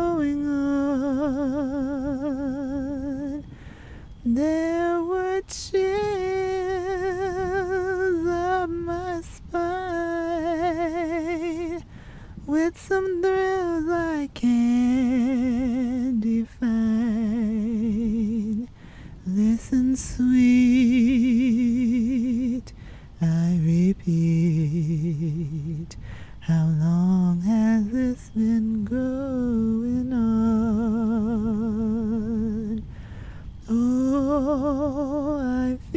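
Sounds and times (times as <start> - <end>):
woman singing a cappella: 0.0 - 35.9.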